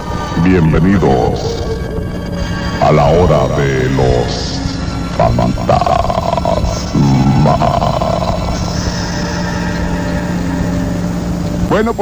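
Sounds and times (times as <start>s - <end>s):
low drone of held tones: 0.0s - 11.9s
radio hiss: 2.5s - 9.8s, 11.1s - 12.0s.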